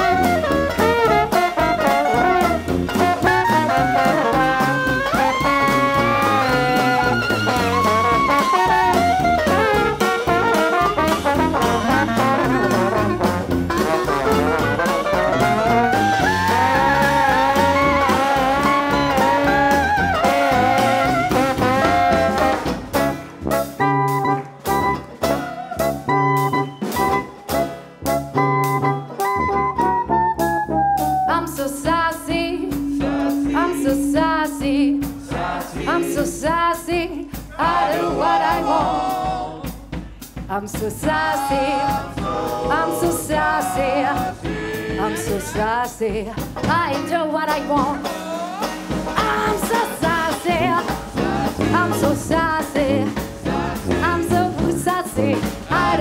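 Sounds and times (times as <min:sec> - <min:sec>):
jazz band playing brass: 0:00.0 - 0:56.0.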